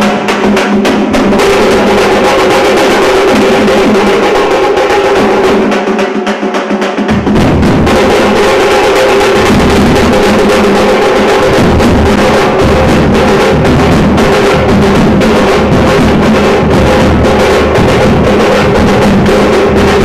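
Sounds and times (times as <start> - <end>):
deep bass drum beats: 0.0 - 20.0
hand drums fast rhythm: 0.0 - 20.0.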